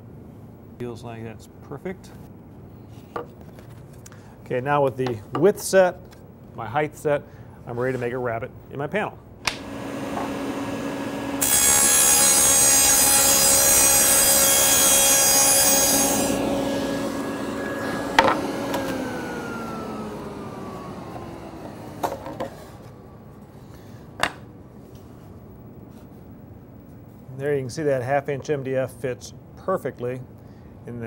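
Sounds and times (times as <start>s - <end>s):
saw cutting plywood: 9.5s - 22.8s
table saw running: 9.5s - 23.0s.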